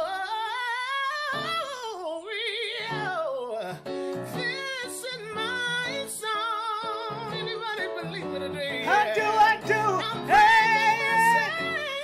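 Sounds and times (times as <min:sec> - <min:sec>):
gospel singing with vibrato: 0:02.4 - 0:12.0
instrumental backing: 0:03.8 - 0:12.0.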